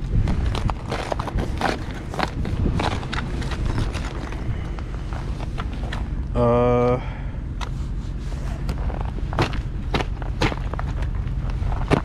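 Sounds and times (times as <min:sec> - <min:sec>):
crunching and scraping on ice: 0:00.0 - 0:06.2, 0:07.6 - 0:12.0.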